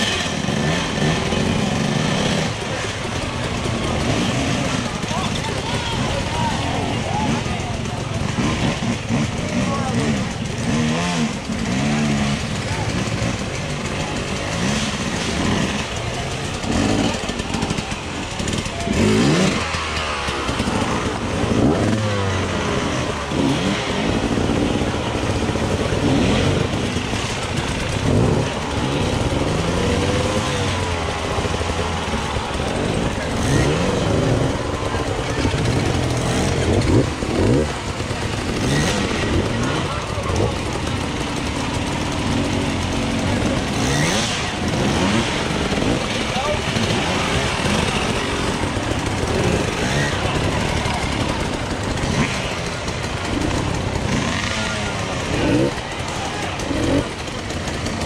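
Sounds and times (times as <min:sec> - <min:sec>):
dirt bike engines revving: 0:00.0 - 0:58.0
spectators' voices: 0:00.0 - 0:58.0.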